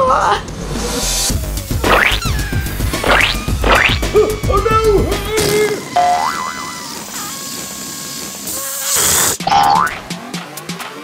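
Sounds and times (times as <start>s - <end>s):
background music: 0.0s - 7.1s, 9.4s - 11.0s
whoosh: 0.5s - 4.1s
rising cartoon tone: 1.7s - 7.6s
cartoon boing: 3.1s - 4.0s, 6.0s - 6.7s, 9.4s - 10.0s.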